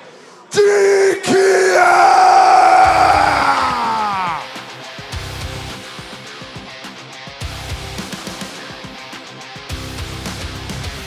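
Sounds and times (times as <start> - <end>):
low thumping music: 2.7 - 11.0.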